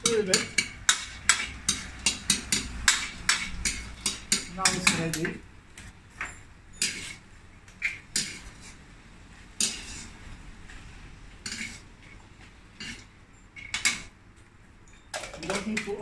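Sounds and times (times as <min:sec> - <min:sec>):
metal ladle scraping a wok: 0:06.7 - 0:08.9, 0:09.5 - 0:10.4, 0:11.4 - 0:14.1.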